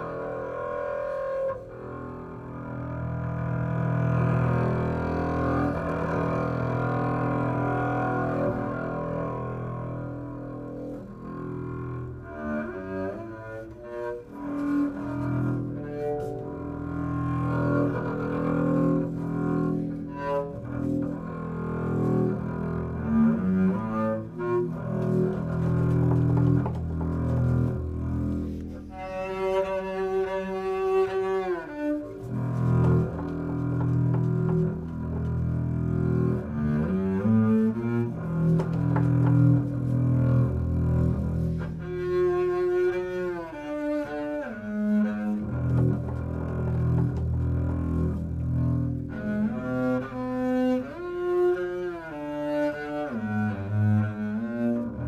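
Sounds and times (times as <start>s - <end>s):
bowed double bass: 0.0s - 55.0s.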